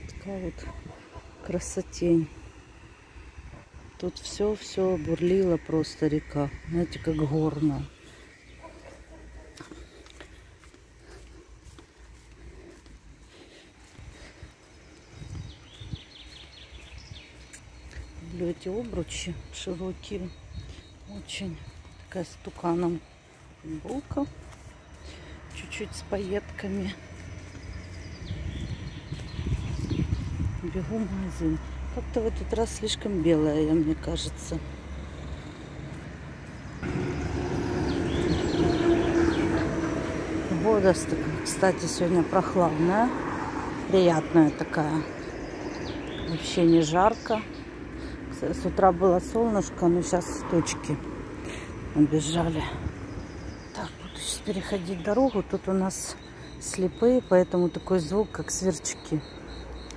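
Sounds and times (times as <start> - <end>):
street traffic: 0.0 - 59.9
bus engine hum: 31.0 - 45.2
bird chirps: 33.8 - 40.8, 44.1 - 48.5, 52.2 - 59.9.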